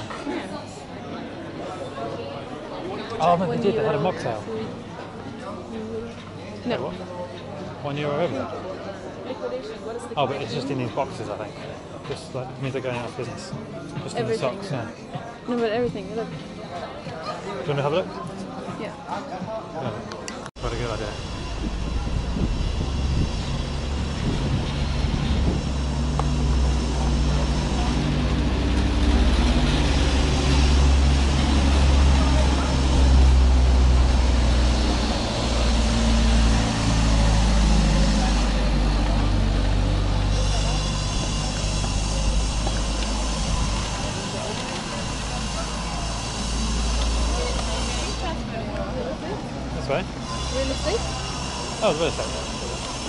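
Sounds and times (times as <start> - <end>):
voices of passers-by: 0.0 - 53.0
low rumble of traffic or wind: 20.6 - 40.3.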